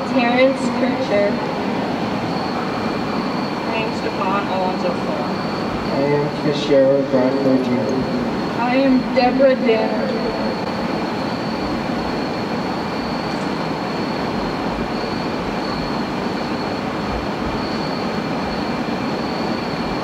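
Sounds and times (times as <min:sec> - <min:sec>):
faint high-pitched whine: 0:00.0 - 0:20.0
steady rushing noise: 0:00.0 - 0:20.0.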